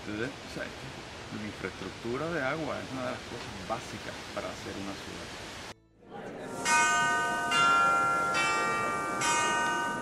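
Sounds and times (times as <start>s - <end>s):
struck bell chimes: 6.5s - 10.0s.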